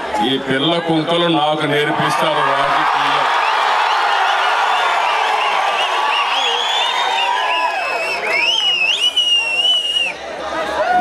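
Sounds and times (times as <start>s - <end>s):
crowd cheering: 0.0s - 11.0s
short whistles: 5.4s - 10.2s.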